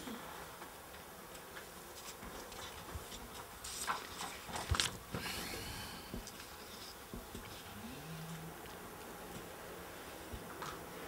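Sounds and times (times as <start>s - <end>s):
paper sheets rustling: 3.4s - 5.3s.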